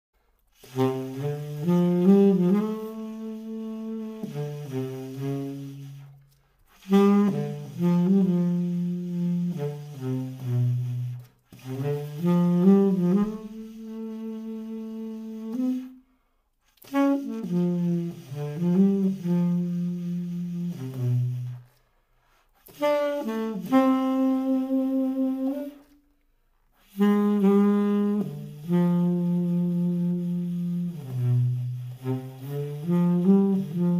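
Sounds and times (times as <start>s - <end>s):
tenor saxophone melody: 0.5s - 33.9s.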